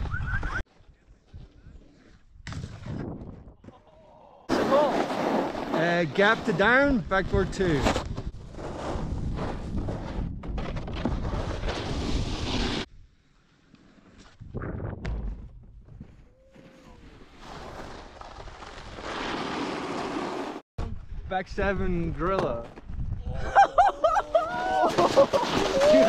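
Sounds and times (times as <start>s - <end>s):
snowboard scraping over snow: 4.5s - 12.9s, 16.5s - 20.6s.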